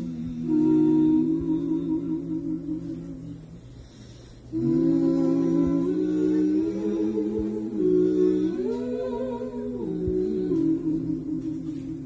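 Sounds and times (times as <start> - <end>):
voices humming in harmony: 0.0 - 12.0.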